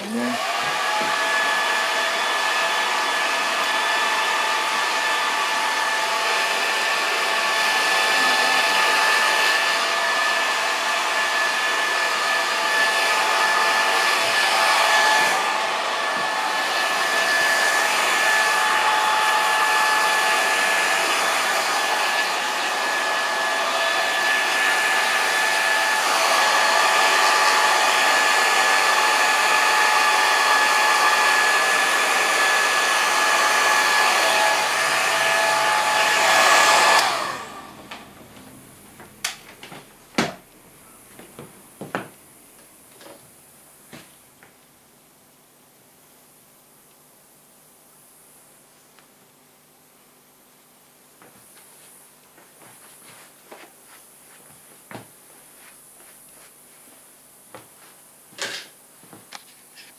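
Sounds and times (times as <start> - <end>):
hair dryer running: 0.0 - 44.2, 51.2 - 59.4.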